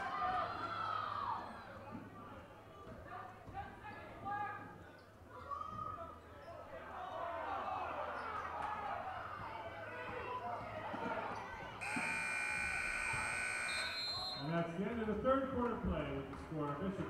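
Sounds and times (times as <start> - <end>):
crowd talking and calling out: 0.0 - 17.0
scoreboard buzzer: 11.8 - 14.4.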